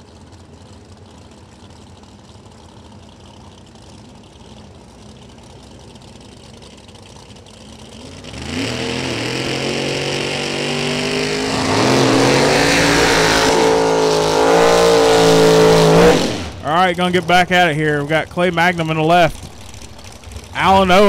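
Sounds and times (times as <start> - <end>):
drag racing car engines revving: 7.3 - 21.0.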